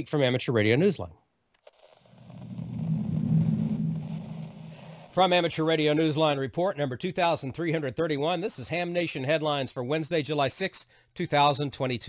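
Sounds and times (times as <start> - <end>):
low noisy sound effect: 2.1 - 5.2.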